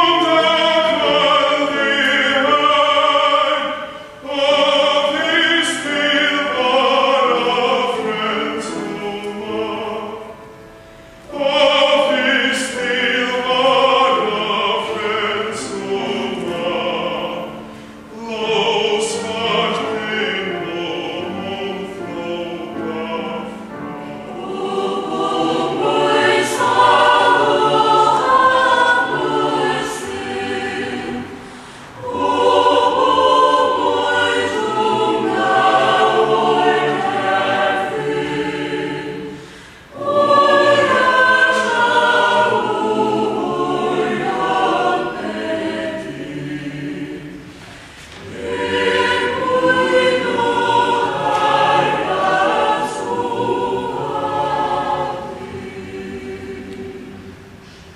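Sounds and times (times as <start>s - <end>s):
choir singing a hymn: 0.0s - 57.9s.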